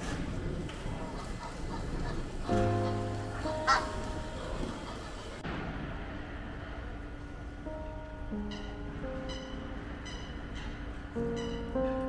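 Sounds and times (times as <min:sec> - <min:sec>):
goose honk: 0:01.1 - 0:05.4
background music: 0:01.9 - 0:12.0.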